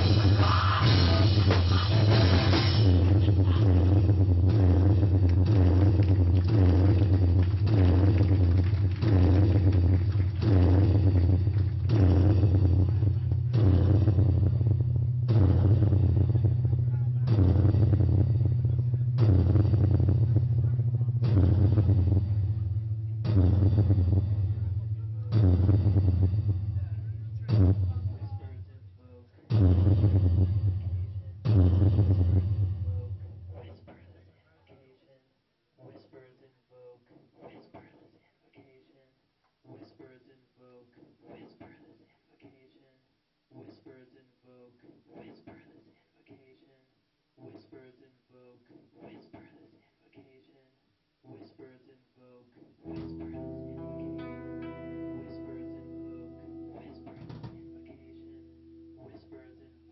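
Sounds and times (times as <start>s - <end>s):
swelling noise: 0.0s - 28.9s, 29.5s - 33.7s
amplifier low drone: 0.0s - 33.8s, 52.9s - 59.9s
low electric guitar chord ringing: 12.6s - 26.8s, 52.9s - 59.9s.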